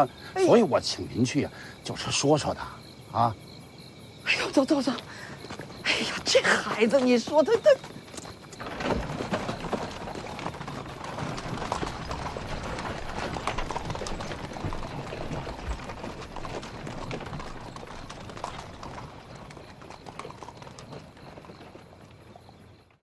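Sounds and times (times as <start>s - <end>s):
horse hooves clopping on mud: 4.8s - 23.0s.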